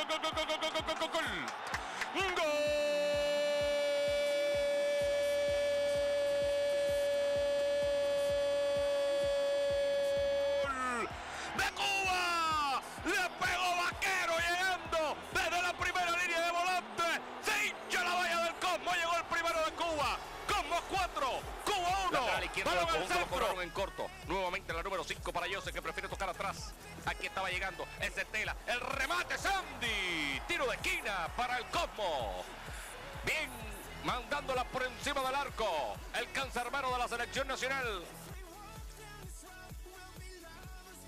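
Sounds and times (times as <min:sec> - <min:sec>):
commentator's long goal shout: 0:00.0 - 0:07.1, 0:10.1 - 0:24.7, 0:25.7 - 0:38.2
rapid excited commentary: 0:00.0 - 0:41.0.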